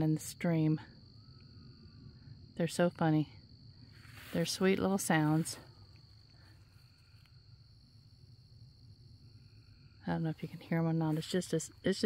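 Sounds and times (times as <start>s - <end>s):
higher insect tone: 0.0s - 12.0s
night insects trilling: 0.0s - 12.0s.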